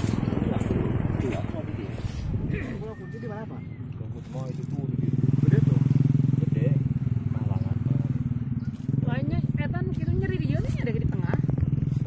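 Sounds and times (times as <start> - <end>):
small engine running: 0.0 - 12.0.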